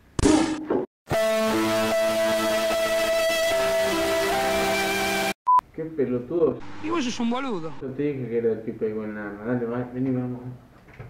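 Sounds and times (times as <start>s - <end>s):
music with held guitar notes: 1.1s - 5.3s.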